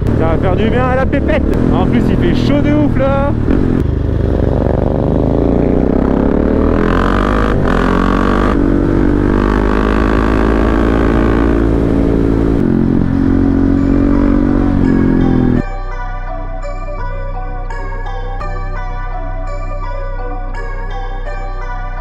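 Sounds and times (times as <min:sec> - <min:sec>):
music: 0:00.0 - 0:03.3, 0:13.3 - 0:22.0.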